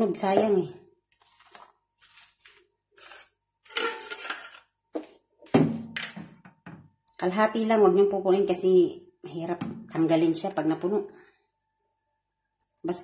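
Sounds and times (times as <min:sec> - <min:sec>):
metal spoon clinking on foil cups: 0:02.4 - 0:04.7.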